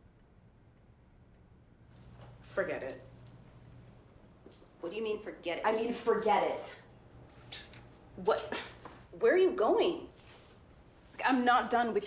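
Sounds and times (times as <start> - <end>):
faint even ticking: 0.0 - 2.4.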